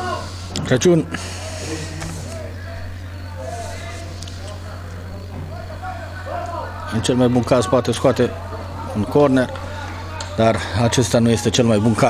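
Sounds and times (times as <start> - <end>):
faint voices calling out: 0.0 - 12.0
steady low hum: 0.0 - 12.0.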